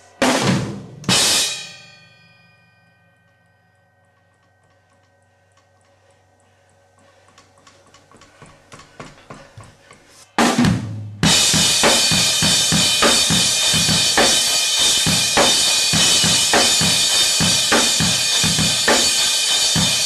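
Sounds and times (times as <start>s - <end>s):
cymbal crash: 0.0s - 2.5s, 11.2s - 20.0s
faint ticks: 4.1s - 8.5s
drum strokes: 10.3s - 20.0s.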